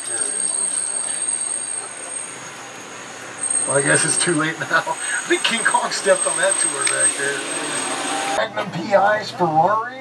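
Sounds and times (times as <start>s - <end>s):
tram rolling rumble: 0.0s - 8.0s
high-pitched whine: 0.0s - 8.4s.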